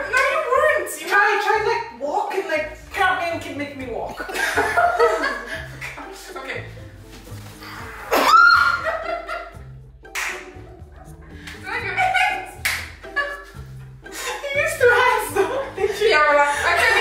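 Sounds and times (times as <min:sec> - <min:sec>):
background music: 0:00.0 - 0:17.0
women laughing and shrieking: 0:08.1 - 0:09.5
sharp slap: 0:10.1 - 0:10.5, 0:12.6 - 0:12.9.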